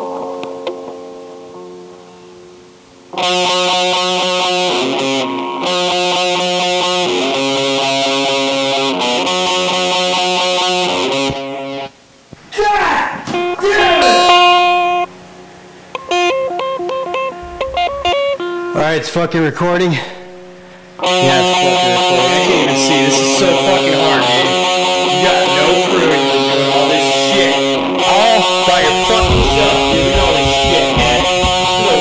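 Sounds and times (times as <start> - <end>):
electric guitar picked notes: 0.0 - 11.9, 13.4 - 18.8, 20.2 - 32.0
faint low hum: 17.3 - 19.4
electric guitar chord ringing: 20.2 - 29.0.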